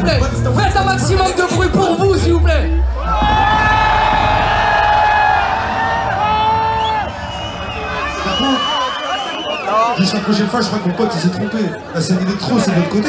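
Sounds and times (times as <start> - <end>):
low bass: 0.0 - 6.3
concert crowd cheering and screaming: 2.4 - 11.0
rising whoops: 3.0 - 9.8.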